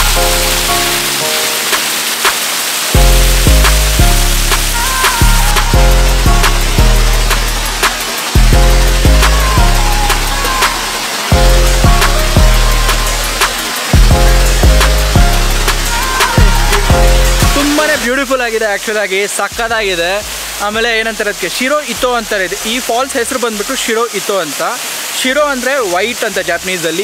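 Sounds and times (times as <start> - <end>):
deep bass notes: 0.0 - 1.2, 3.0 - 18.8, 19.6 - 22.9
background music with steady beat: 0.0 - 23.8.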